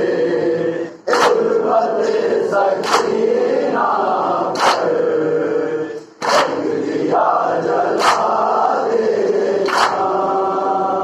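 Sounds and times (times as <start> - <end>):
men chanting in unison: 0.0 - 11.0.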